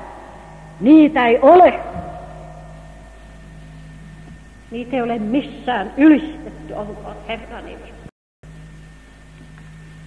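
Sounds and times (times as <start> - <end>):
electrical hum: 0.0 - 10.0.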